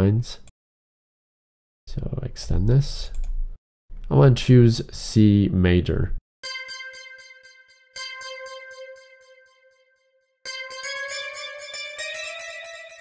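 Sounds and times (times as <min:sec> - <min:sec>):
pulsing synthesizer notes: 0:06.4 - 0:13.0.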